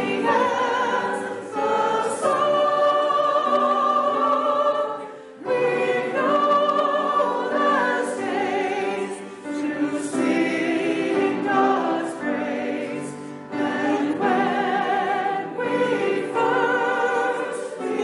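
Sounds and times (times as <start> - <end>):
congregation singing a hymn: 0.0 - 18.0.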